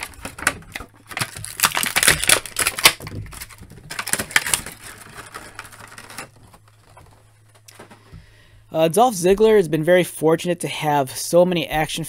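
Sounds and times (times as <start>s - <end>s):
plastic packaging crackling: 0.0s - 8.1s.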